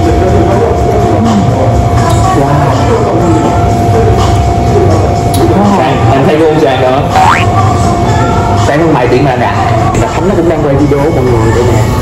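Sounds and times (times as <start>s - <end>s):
background music: 0.0s - 12.0s.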